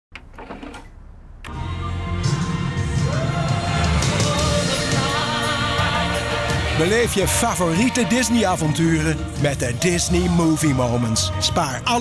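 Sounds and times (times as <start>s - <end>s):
music: 1.5s - 12.0s.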